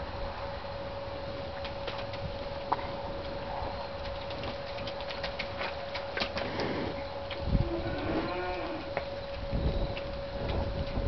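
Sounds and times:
steady hum: 0:00.0 - 0:11.0
cow mooing: 0:07.6 - 0:08.9.

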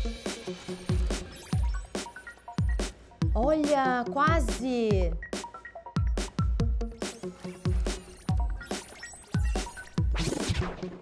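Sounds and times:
electronic music with bass beats: 0:00.0 - 0:11.0.

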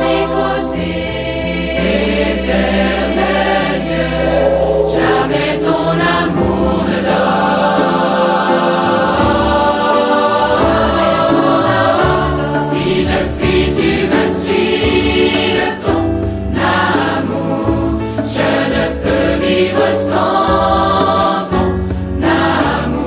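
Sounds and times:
choir singing worship song: 0:00.0 - 0:23.0
instrumental accompaniment: 0:00.0 - 0:23.0.

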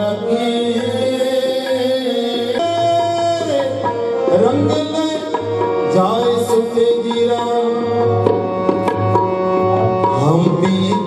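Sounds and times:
tabla: 0:00.0 - 0:11.0.

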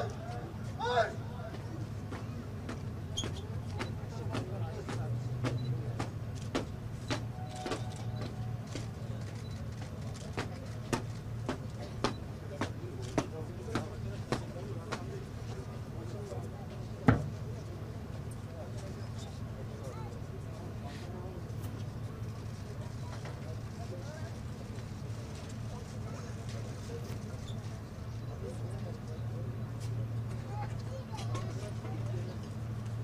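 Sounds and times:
crowd rumble: 0:00.0 - 0:33.0.

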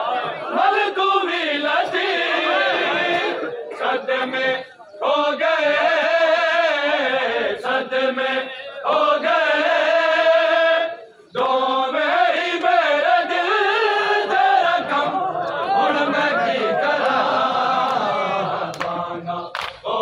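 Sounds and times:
men chanting a lament: 0:00.0 - 0:20.0.

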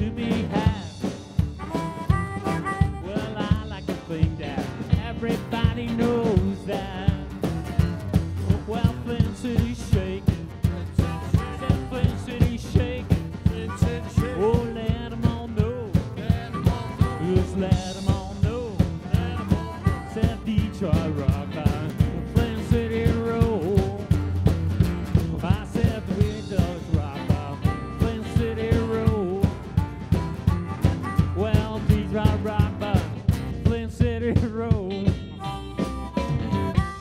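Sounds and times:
harmonica lead line: 0:00.0 - 0:06.9, 0:07.5 - 0:23.9, 0:25.5 - 0:33.6, 0:34.8 - 0:37.0
drums: 0:00.0 - 0:37.0
electric guitar: 0:00.0 - 0:37.0
upright bass: 0:00.0 - 0:37.0.

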